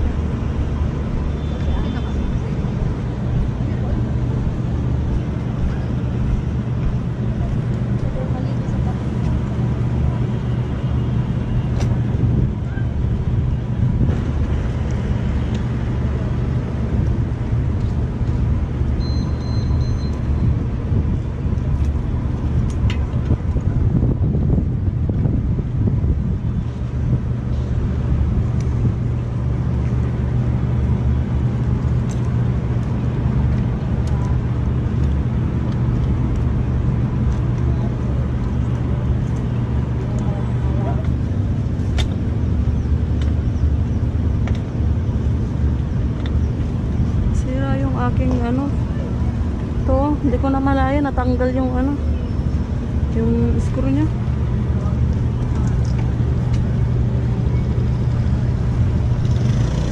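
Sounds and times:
vehicle engine idling: 0:00.0 - 0:59.9.

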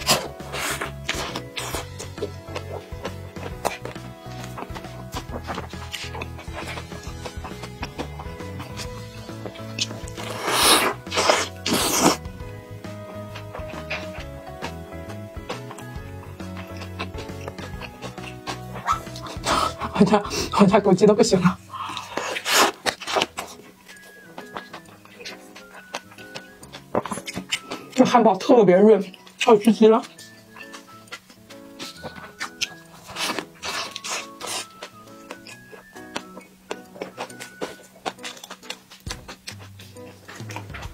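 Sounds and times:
biting and chewing burger: 0:00.0 - 0:20.6, 0:21.4 - 0:40.9
background music: 0:00.0 - 0:40.9
biting into soft bun: 0:21.8 - 0:27.9, 0:30.2 - 0:40.9.

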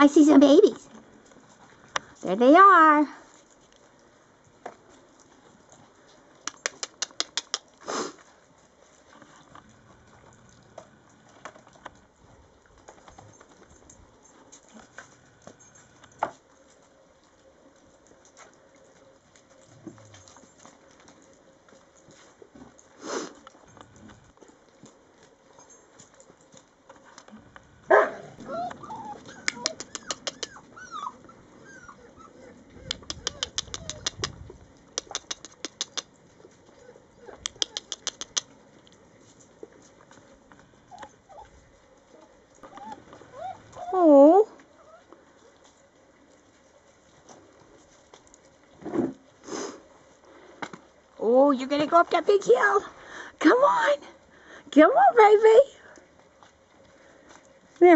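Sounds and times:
paws clicking and scrabbling: 0:00.1 - 0:02.2, 0:02.8 - 0:51.2, 0:55.3 - 0:57.9
puppy yelping: 0:27.9 - 0:34.4, 0:35.0 - 0:38.6, 0:40.9 - 0:45.1
puppy whines and yips: 0:28.3 - 0:34.4, 0:40.9 - 0:45.1.

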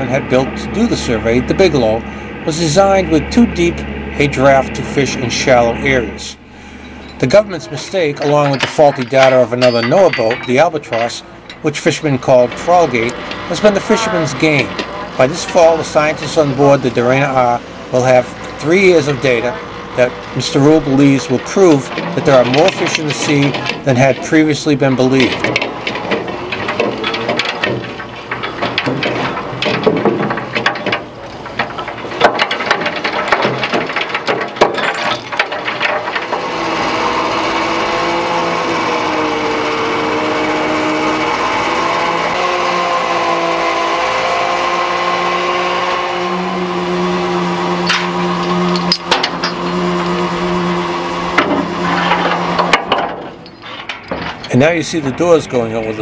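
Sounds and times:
net reel drive whining: 0:00.0 - 0:56.0
trawl gear knocking and clattering: 0:07.0 - 0:13.5, 0:20.4 - 0:38.5, 0:51.3 - 0:56.0.

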